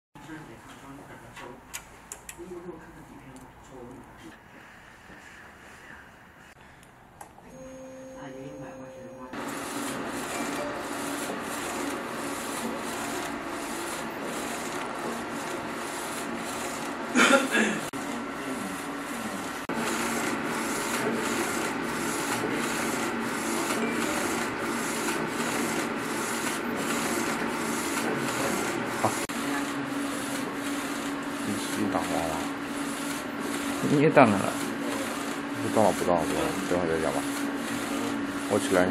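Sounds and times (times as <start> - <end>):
printer carriage shuttling: 9.4 - 17.1.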